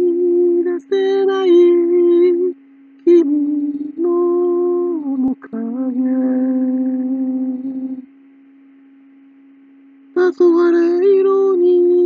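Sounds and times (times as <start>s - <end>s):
man humming: 0.0s - 8.1s
faint steady tone: 0.0s - 12.0s.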